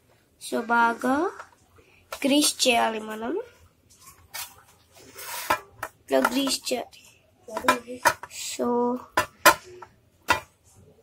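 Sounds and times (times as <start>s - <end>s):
utensil scraping a bowl: 4.4s - 6.7s.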